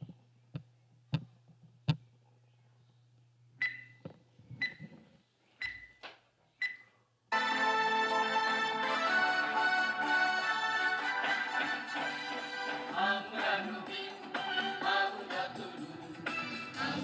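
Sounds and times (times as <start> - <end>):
loud intro music: 7.3 - 17.0.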